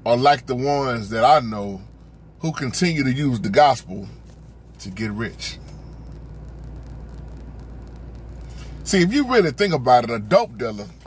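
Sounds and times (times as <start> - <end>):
low hum: 0.0 - 11.0
faint hiss: 0.3 - 11.0.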